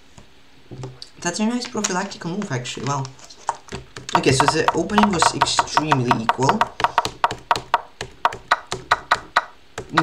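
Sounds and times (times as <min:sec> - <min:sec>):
wooden chess piece clicks: 0:03.5 - 0:10.0.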